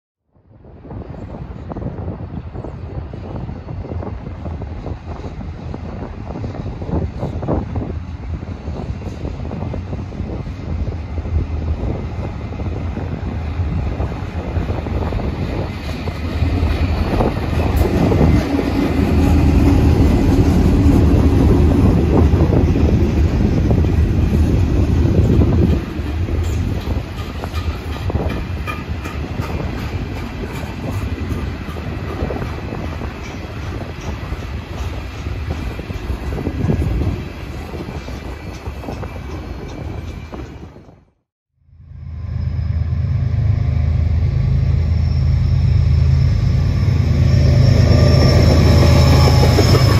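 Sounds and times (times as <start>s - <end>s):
freight cars rolling rumble: 1.0s - 41.0s
locomotive engine rumble: 7.4s - 40.8s, 42.0s - 49.9s.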